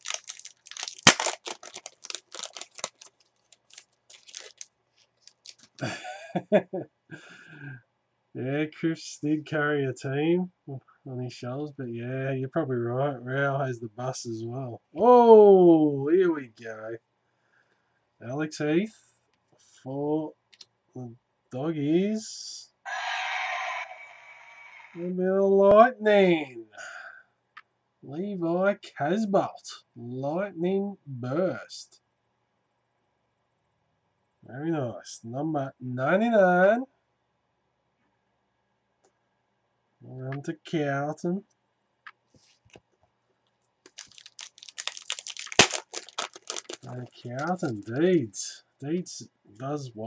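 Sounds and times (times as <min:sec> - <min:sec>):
foil wrapper crinkling: 0:00.0 - 0:06.0, 0:43.9 - 0:48.0
foil wrapper ripping: 0:00.0 - 0:06.0, 0:43.9 - 0:48.0.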